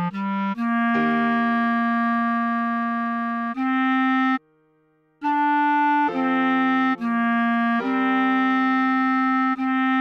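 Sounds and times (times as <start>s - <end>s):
clarinet holding long note: 0.0s - 4.4s, 5.2s - 10.0s.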